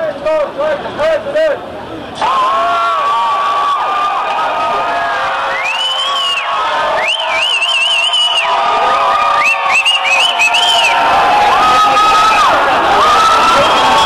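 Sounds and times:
crowd cheering and yelling: 2.2s - 14.0s.

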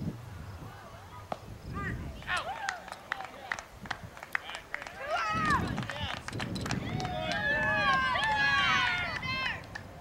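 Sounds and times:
people shouting and calling: 2.2s - 3.5s, 4.9s - 6.1s, 6.8s - 9.7s.

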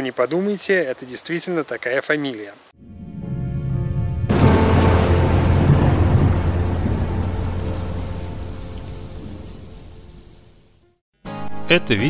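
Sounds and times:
rolling thunder rumble: 2.8s - 10.8s
rain hiss: 4.3s - 10.9s.

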